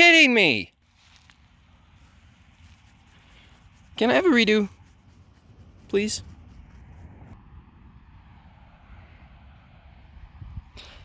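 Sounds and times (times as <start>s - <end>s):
low even outdoor rumble: 0.6s - 11.0s.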